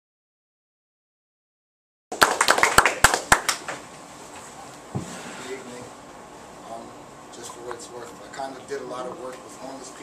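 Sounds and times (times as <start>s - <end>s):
people clapping: 2.1s - 3.8s.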